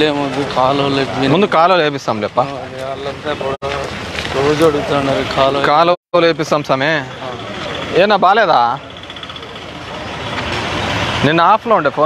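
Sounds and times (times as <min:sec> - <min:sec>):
men talking: 0:00.0 - 0:10.2, 0:11.1 - 0:12.0
steady background noise: 0:00.0 - 0:12.0.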